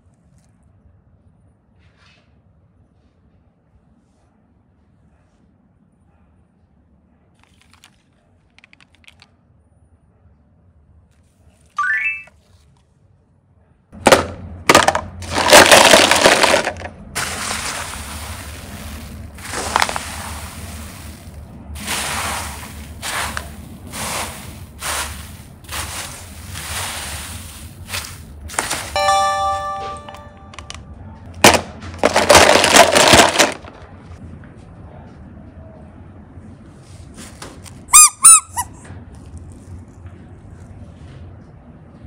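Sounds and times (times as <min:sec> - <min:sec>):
plastic toy cases clattering: 0:07.4 - 0:09.2, 0:14.0 - 0:20.2, 0:31.4 - 0:33.9
hand crunching foam beads: 0:15.2 - 0:29.0, 0:31.4 - 0:33.7
short multi-pitch ringing tone: 0:29.0 - 0:30.9.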